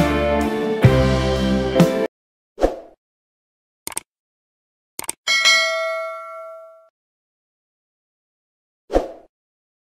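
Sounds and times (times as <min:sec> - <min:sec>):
notification bell ding: 0:05.3 - 0:06.9.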